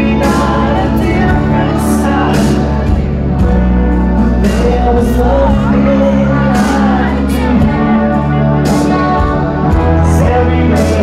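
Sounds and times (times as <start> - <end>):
bass guitar: 0.0 - 11.0
electric guitar chords: 0.0 - 11.0
man singing: 0.0 - 11.0.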